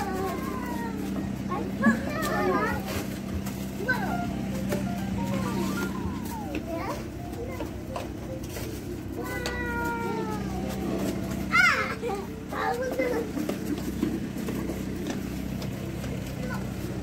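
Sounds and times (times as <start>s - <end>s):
children making wordless calls: 0.0s - 4.5s, 9.0s - 17.0s.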